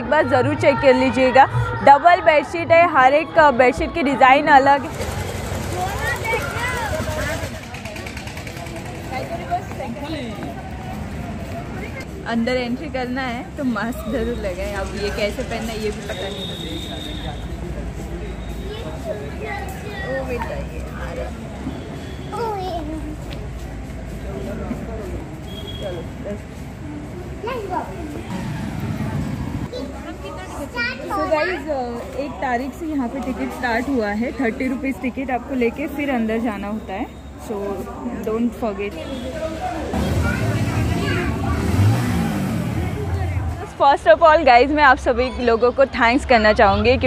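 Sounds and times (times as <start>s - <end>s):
faint voices of passers-by: 0.0s - 47.0s.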